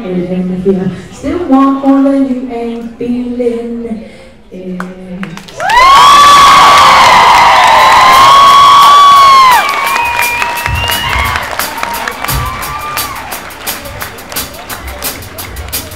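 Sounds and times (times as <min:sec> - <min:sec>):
crowd cheering: 0:05.5 - 0:15.9
audience screaming: 0:05.6 - 0:13.8
sharp claps: 0:07.3 - 0:15.9.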